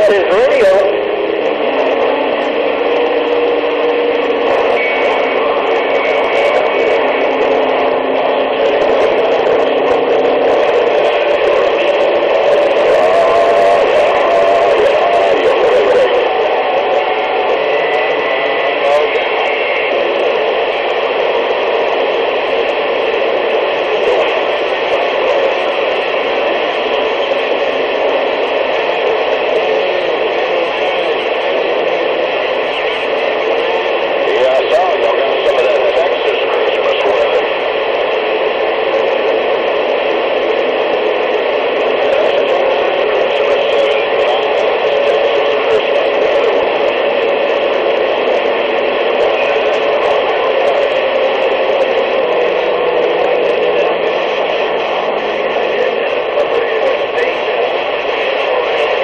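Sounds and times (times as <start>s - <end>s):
faint garbled radio voices: 0.0s - 59.0s
radio static: 0.0s - 59.0s
whistling radio tones: 0.0s - 59.0s.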